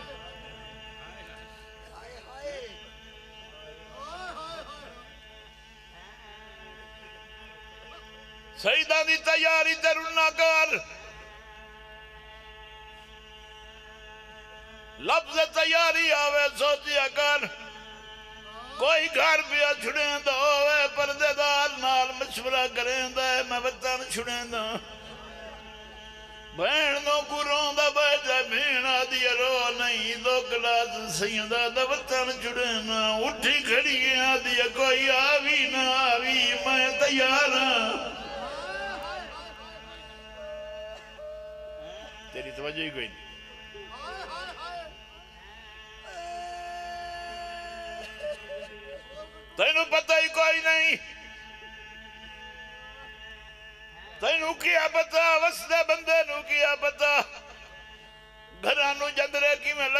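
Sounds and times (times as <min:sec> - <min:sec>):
low pulsing buzz: 0:00.0 - 0:54.4
hum of held tones: 0:00.0 - 0:59.9
man chanting long note: 0:00.0 - 0:59.9.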